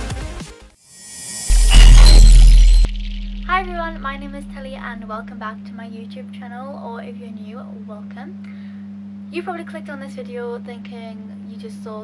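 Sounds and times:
crackling shattering noise: 1.1s - 4.8s
deep bass hit: 1.5s - 5.3s.

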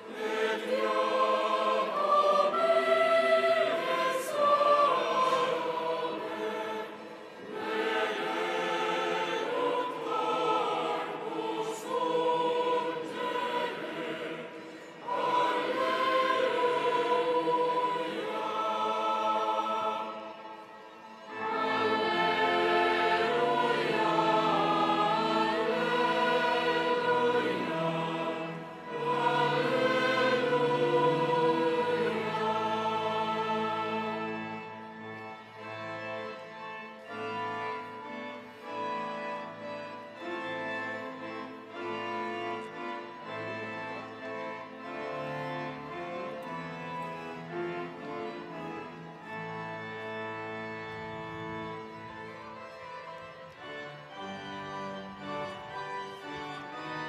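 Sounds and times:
choir singing sacred music: 0.0s - 57.0s.

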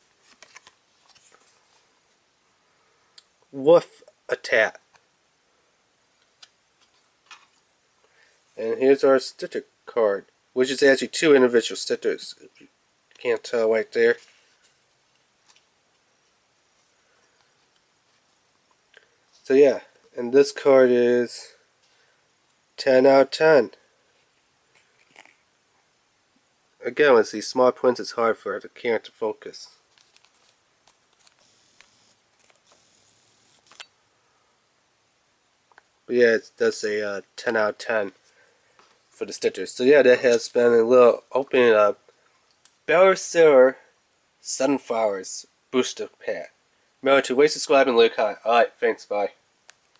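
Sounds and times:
cardboard card clicks and handling: 0.2s - 1.5s
trading cards being handled: 0.2s - 1.9s, 24.2s - 25.5s, 29.8s - 33.9s.

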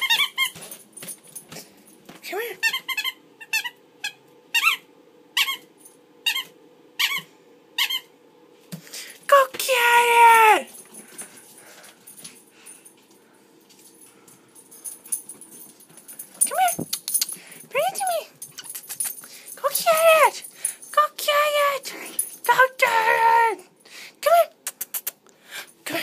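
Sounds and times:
squeak: 0.0s - 0.6s, 2.6s - 4.8s, 6.3s - 8.1s.

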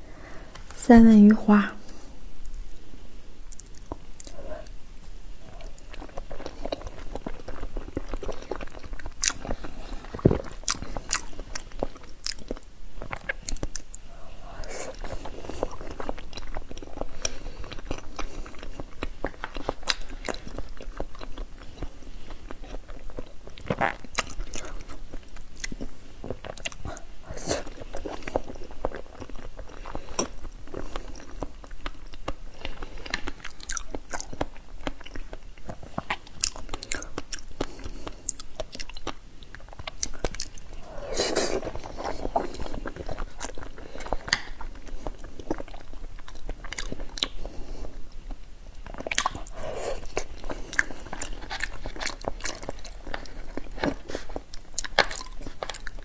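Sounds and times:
person chewing: 3.5s - 56.0s.

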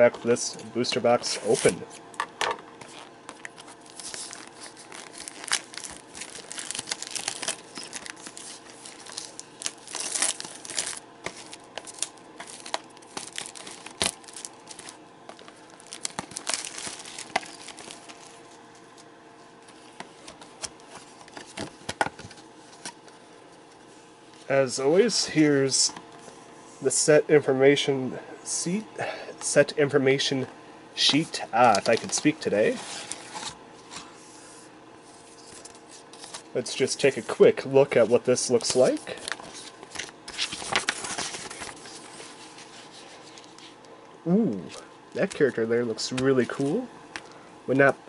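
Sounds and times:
plastic wrap crinkling: 2.8s - 18.6s, 38.6s - 43.7s.

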